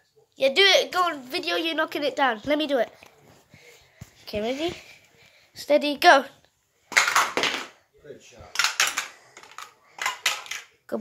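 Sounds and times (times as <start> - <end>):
plastic blocks clattering: 6.9 - 7.7, 8.5 - 10.7.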